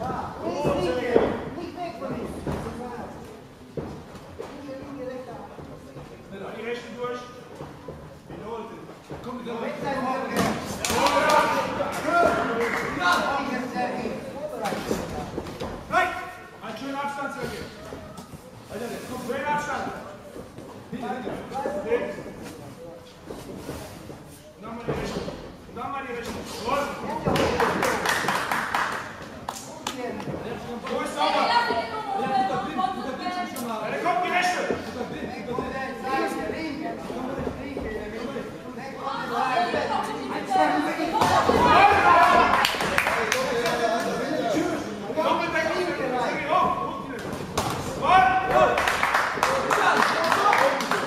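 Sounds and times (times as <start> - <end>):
crowd noise: 25.5 - 51.0.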